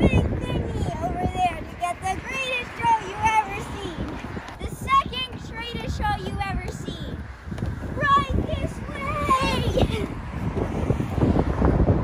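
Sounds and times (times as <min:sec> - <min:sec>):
child's voice: 0:00.0 - 0:07.2, 0:07.9 - 0:10.2
wind rumbling on microphone: 0:00.0 - 0:12.0.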